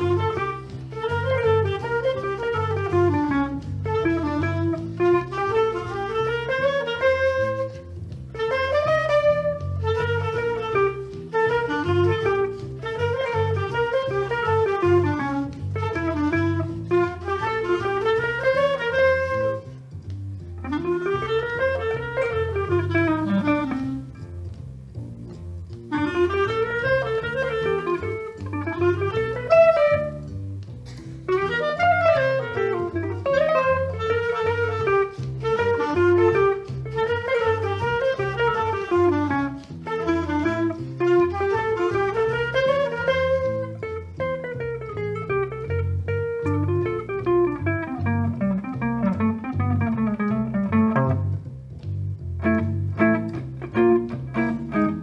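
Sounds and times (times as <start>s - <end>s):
clarinet melody: 0.0s - 55.0s
guitar accompaniment: 0.0s - 55.0s.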